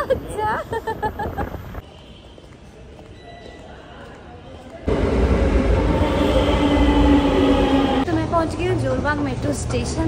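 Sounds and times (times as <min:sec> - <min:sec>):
metro train rumble: 0:04.6 - 0:10.0
train whine: 0:04.9 - 0:09.0.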